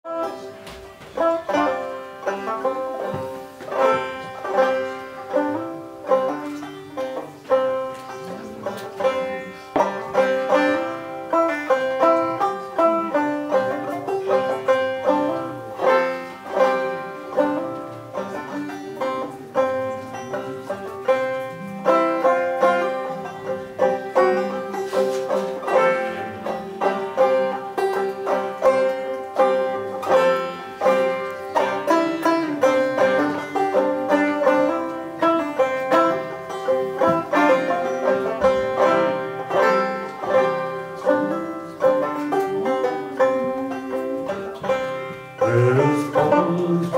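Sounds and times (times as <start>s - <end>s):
banjo picking a melody: 0.0s - 46.9s.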